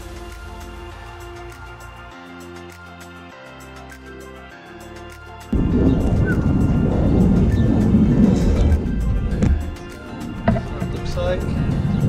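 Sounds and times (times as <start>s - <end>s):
background music: 0.0s - 12.0s
wind buffeting microphone: 5.6s - 12.0s.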